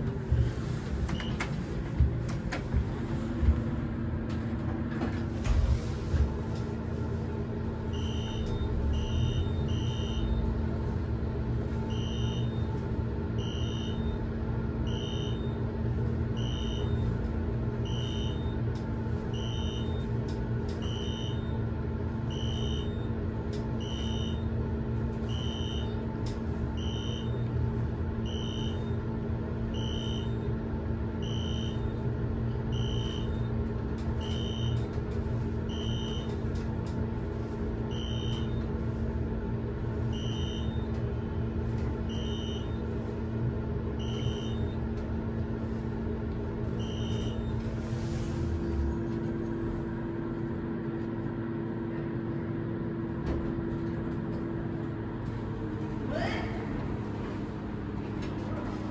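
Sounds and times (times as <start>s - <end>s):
elevator car humming: 0.0s - 58.9s.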